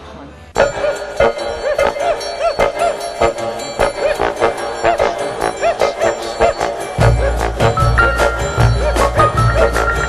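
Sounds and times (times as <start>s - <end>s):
instrumental music with steady beat: 0.6s - 10.0s.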